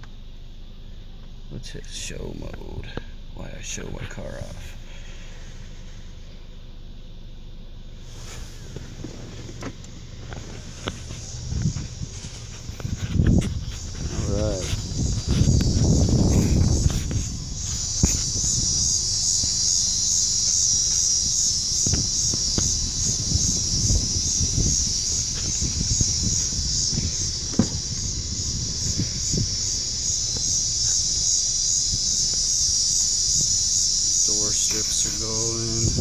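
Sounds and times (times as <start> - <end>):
insects chorus: 0.0 - 36.0
handling noise: 8.2 - 19.6, 23.9 - 31.2
short knocks: 27.5 - 28.0.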